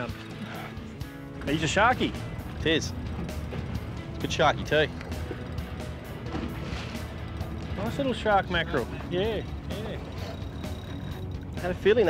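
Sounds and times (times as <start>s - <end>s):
background music: 0.0s - 12.0s
boat engine idling: 0.0s - 12.0s.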